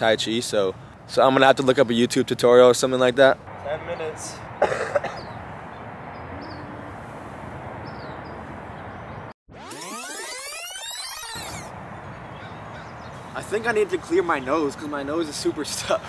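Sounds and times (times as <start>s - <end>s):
outdoor background noise: 0.0s - 16.0s.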